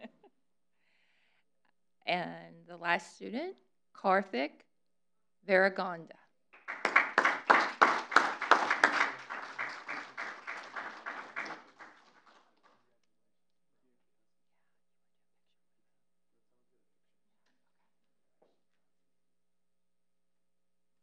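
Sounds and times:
small audience clapping: 0:06.6 - 0:12.9.

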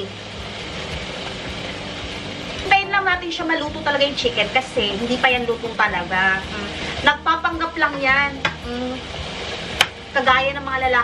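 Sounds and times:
food sizzling in a frying pan: 0:00.0 - 0:11.0.

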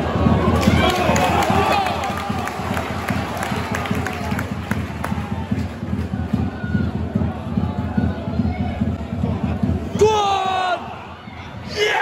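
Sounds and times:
crowd voices and shouts: 0:00.0 - 0:12.0.

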